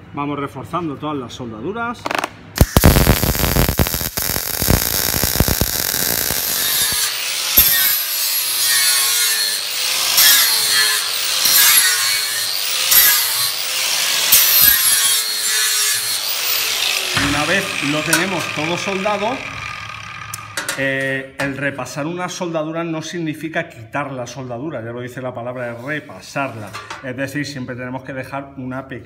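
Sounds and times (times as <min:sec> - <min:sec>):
welder crackling: 0:02.0 - 0:20.8
angle grinder on metal: 0:02.7 - 0:20.7.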